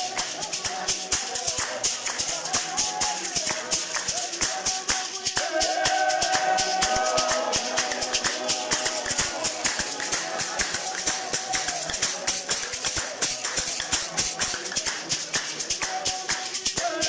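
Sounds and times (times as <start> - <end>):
congregation clapping: 0.0 - 17.0
hymn singing: 0.0 - 17.0
shaker rattling: 0.0 - 17.0.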